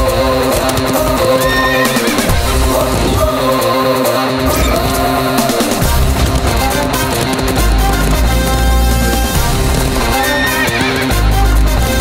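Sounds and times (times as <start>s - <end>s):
action film score: 0.0s - 12.0s
horse neighing: 1.4s - 3.3s, 10.1s - 11.2s.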